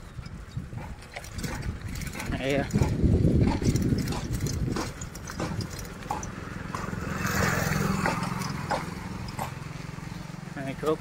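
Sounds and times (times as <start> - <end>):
low rumble with rattling clicks: 0.0 - 11.0
motorcycle engine running: 0.7 - 11.0.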